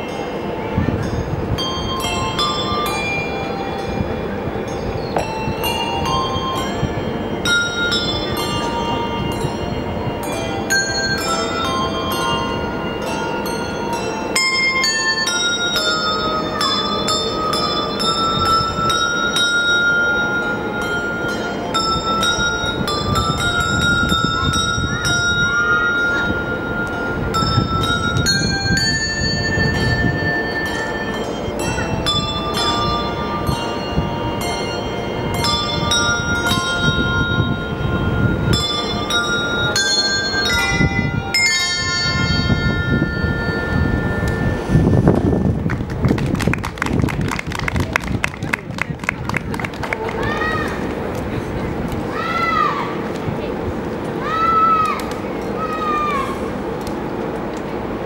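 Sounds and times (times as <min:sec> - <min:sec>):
handbell ensemble playing: 0:00.0 - 0:46.7.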